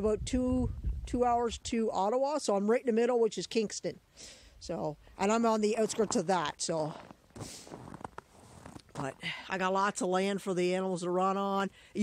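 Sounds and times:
footsteps crunching on snow: 5.7s - 9.2s.

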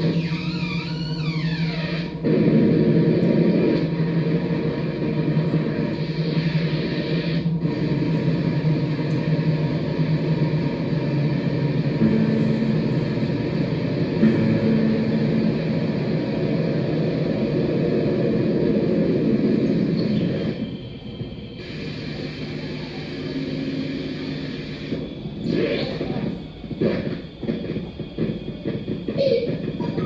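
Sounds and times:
electronic drone music: 0.0s - 30.0s.

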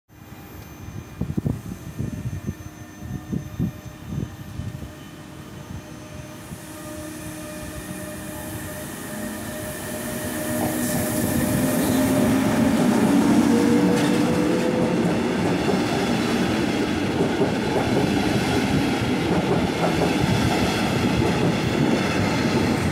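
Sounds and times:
steady train whine: 0.1s - 22.9s
train rumbling on rails: 0.5s - 22.9s.

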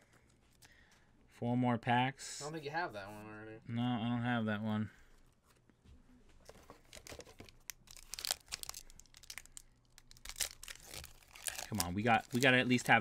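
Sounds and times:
foil wrapper crinkling and tearing: 6.8s - 13.0s.

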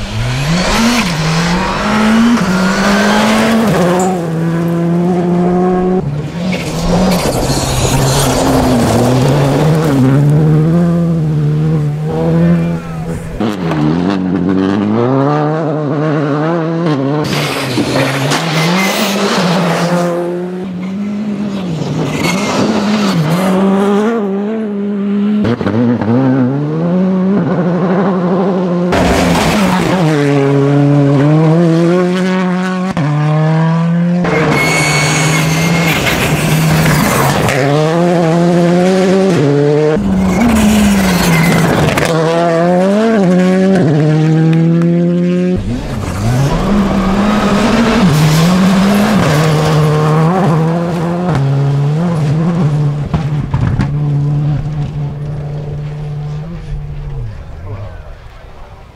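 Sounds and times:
rally car engines revving: 0.0s - 58.9s.

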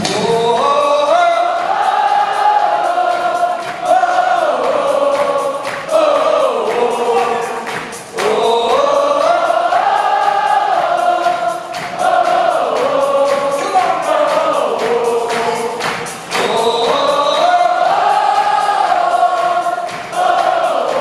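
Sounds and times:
crowd singing slow melody: 0.0s - 21.0s.

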